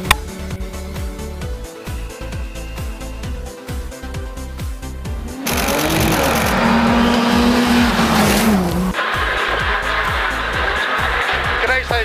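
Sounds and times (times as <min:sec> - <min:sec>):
rally car engine passing: 0:05.1 - 0:09.0
tyres on gravel: 0:05.4 - 0:10.3.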